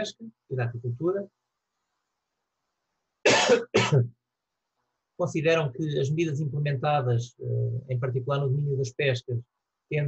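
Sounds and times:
man coughing: 3.3 - 4.1.

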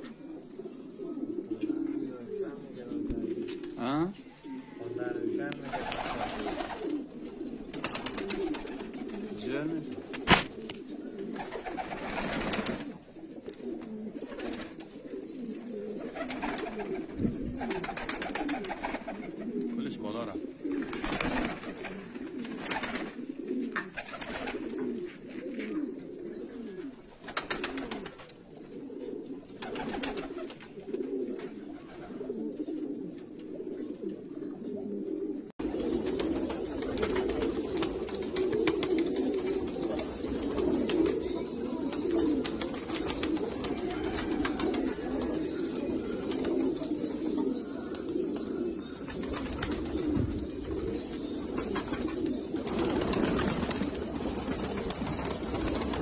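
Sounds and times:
pigeons cooing: 0.0 - 56.0.

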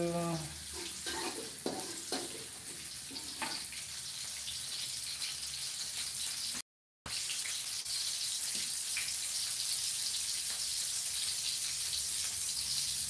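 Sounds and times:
shallots sizzling in oil: 0.0 - 13.0.

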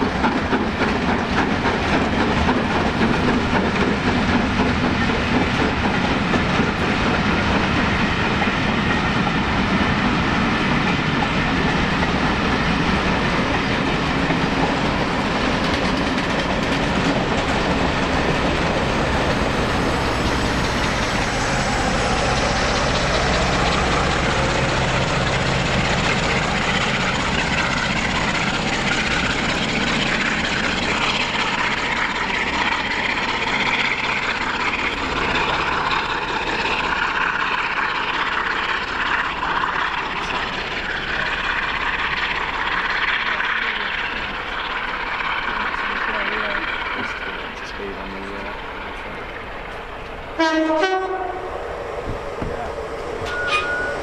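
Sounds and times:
train wheels clattering: 0.0 - 50.8.

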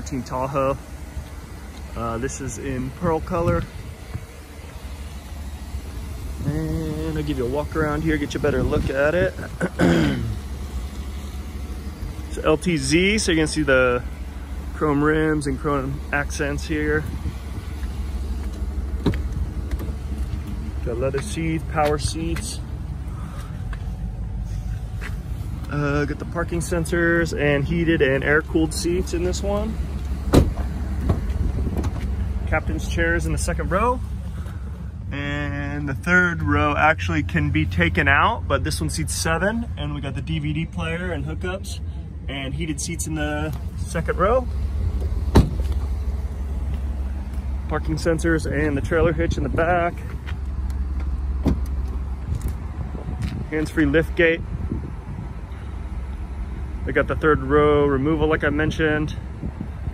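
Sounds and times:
low steady rumble: 0.0 - 59.9
car door clack: 30.3 - 32.1, 45.0 - 45.9, 51.0 - 51.8.

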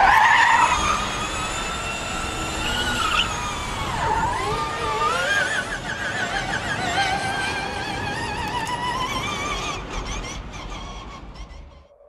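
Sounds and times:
race car tyres squealing: 0.0 - 12.0.

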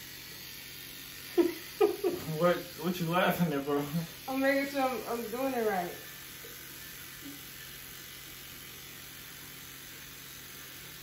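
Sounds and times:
electric shaver buzzing: 0.0 - 11.0.

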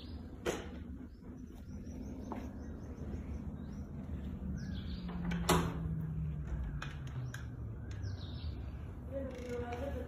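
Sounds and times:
bird chirps: 0.0 - 9.6.

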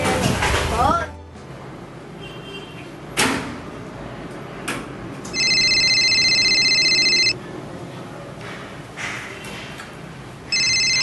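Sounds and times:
electronic phone ringing: 5.3 - 7.4, 10.5 - 11.0.

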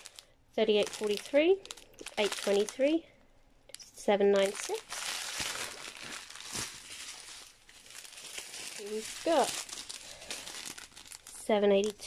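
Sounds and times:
plastic bags crinkling: 0.0 - 3.0, 3.7 - 12.0
person speaking: 0.6 - 3.1, 3.8 - 5.0, 8.7 - 9.8, 11.3 - 12.0.

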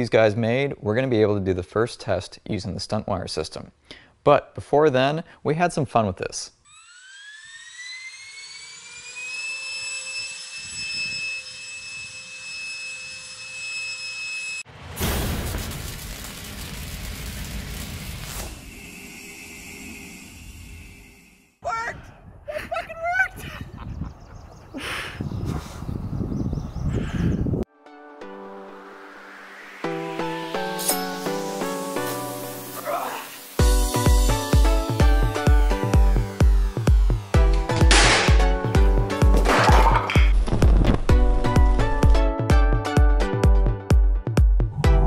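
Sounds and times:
electric fan whine: 6.7 - 14.6, 33.4 - 39.7
music: 27.7 - 45.0.

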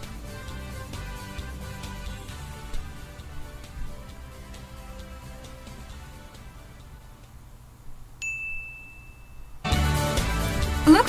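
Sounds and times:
music: 0.0 - 7.4, 9.6 - 11.0
bell-like ding: 8.2 - 9.7.

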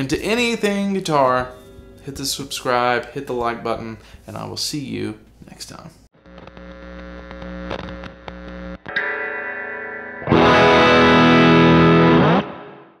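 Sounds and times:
distorted electric guitar: 6.2 - 13.0.

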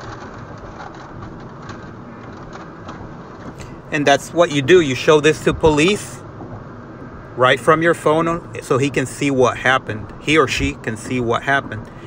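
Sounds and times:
muffled car road and engine noise: 0.0 - 12.0.

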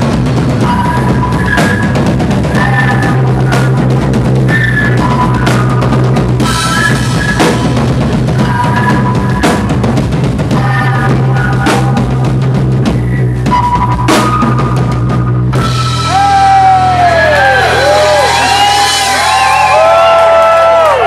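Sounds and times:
drum kit pounding: 0.0 - 21.0.

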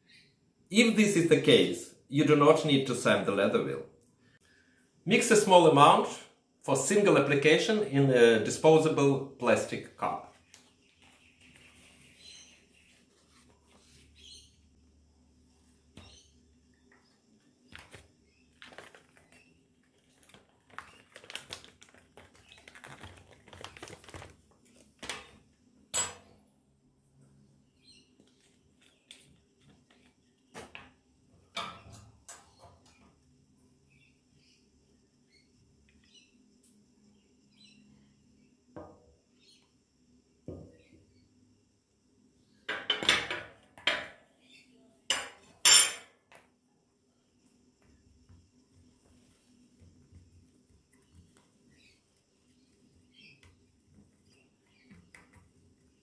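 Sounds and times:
knocks and clinks: 26.0 - 26.3.

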